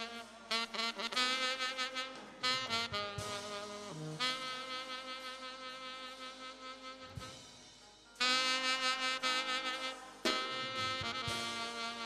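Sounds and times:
saxophone long note: 0:00.0 - 0:07.4, 0:08.2 - 0:12.0.

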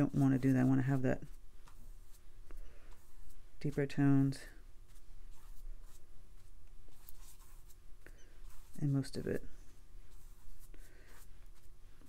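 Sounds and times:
paintbrush strokes on paper: 0:00.0 - 0:12.0.

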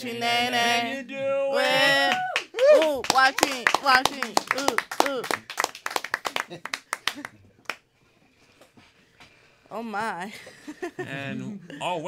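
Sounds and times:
people clapping: 0:01.6 - 0:07.9.

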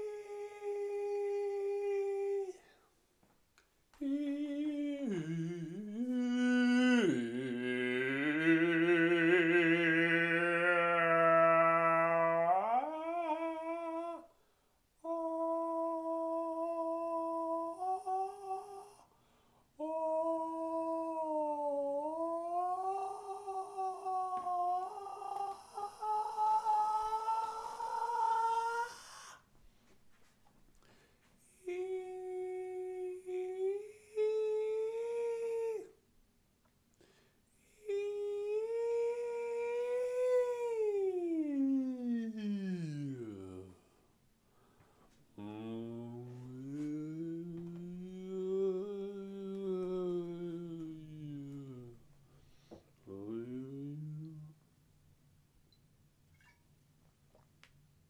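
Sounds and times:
voice holding long notes: 0:00.0 - 0:02.7, 0:04.0 - 0:14.4, 0:15.0 - 0:19.1, 0:19.8 - 0:29.4, 0:31.5 - 0:36.0, 0:37.8 - 0:44.0, 0:45.4 - 0:52.1, 0:53.1 - 0:54.6
person humming: 0:00.0 - 0:02.8, 0:04.0 - 0:14.4, 0:15.0 - 0:19.1, 0:19.8 - 0:29.4, 0:31.5 - 0:36.0, 0:37.6 - 0:44.0, 0:45.4 - 0:54.6.

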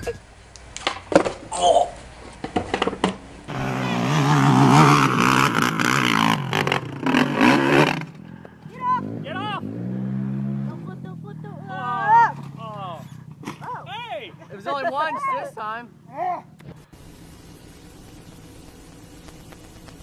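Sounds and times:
quad bike engine revving: 0:03.5 - 0:14.6, 0:15.9 - 0:20.0
people crying out: 0:11.3 - 0:13.0, 0:13.6 - 0:16.5.

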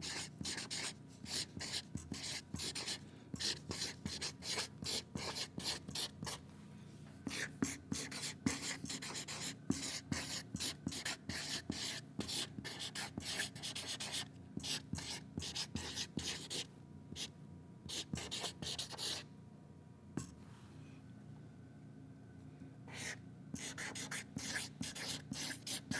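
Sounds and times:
marker scratching on paper: 0:00.0 - 0:06.4, 0:07.2 - 0:17.3, 0:17.9 - 0:19.2, 0:22.9 - 0:25.9.

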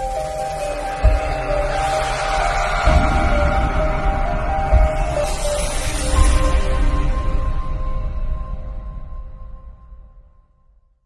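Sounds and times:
low thumping beat: 0:01.0 - 0:01.7, 0:02.6 - 0:05.4.

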